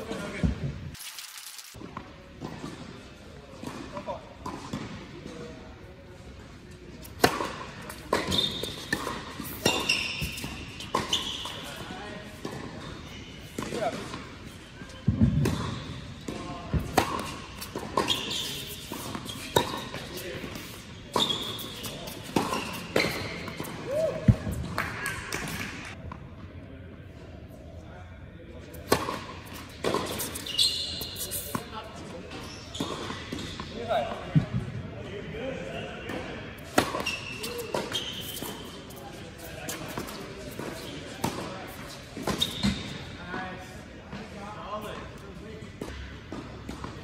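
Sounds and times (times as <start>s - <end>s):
racquets hitting tennis ball: 7.0s - 26.0s, 28.8s - 31.7s, 36.1s - 43.0s
shoe squeaks on court: 7.3s - 12.0s, 17.1s - 23.8s, 29.6s - 33.7s, 36.7s - 43.2s
tennis racket hitting ball: 15.3s - 25.6s, 36.7s - 38.6s.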